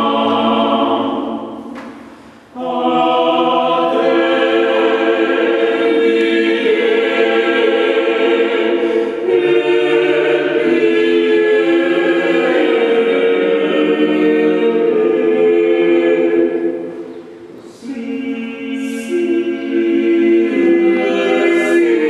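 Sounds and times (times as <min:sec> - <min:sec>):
vocal group singing a cappella: 0:00.0 - 0:22.0.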